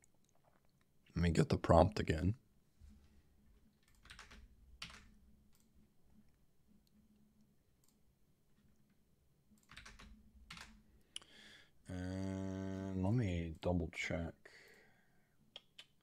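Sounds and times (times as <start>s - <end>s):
keyboard and mouse clicks: 3.8s - 5.8s, 9.5s - 11.3s, 15.5s - 16.0s.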